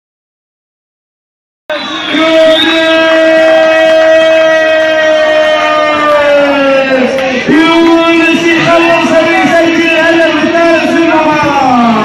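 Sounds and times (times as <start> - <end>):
man shouting through loudspeaker: 1.7 - 12.0.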